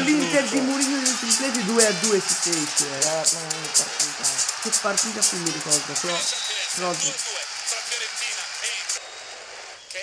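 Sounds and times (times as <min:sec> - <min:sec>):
sports commentary: 0:00.0 - 0:08.7
stadium crowd noise: 0:00.0 - 0:09.0.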